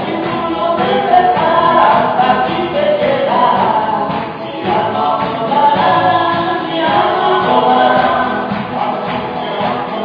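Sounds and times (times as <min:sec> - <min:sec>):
congregation singing: 0:00.0 - 0:10.0
praise band playing: 0:00.0 - 0:10.0.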